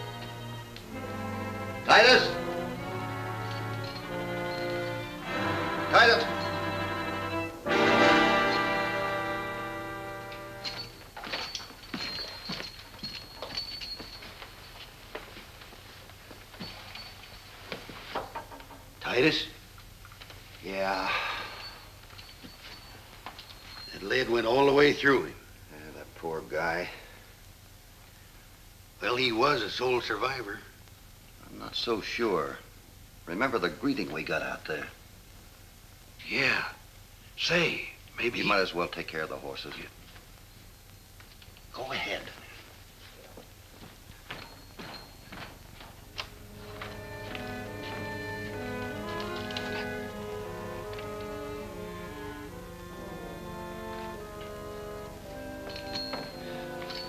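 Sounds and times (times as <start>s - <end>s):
low background music: 0.0s - 11.0s, 46.2s - 57.0s.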